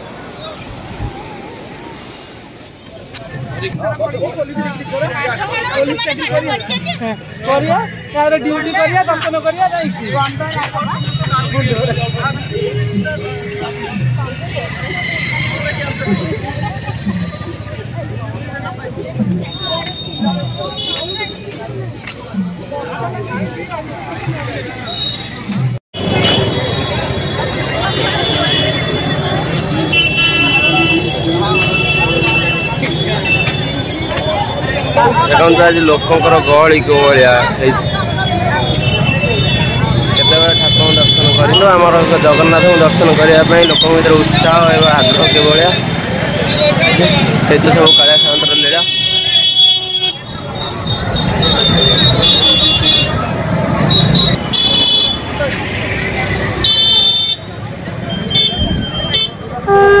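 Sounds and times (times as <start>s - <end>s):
crowd talking: 0.0s - 60.0s
traffic rumble: 0.0s - 60.0s
vehicle horns tooting: 6.6s - 16.5s, 19.4s - 21.6s, 24.8s - 60.0s.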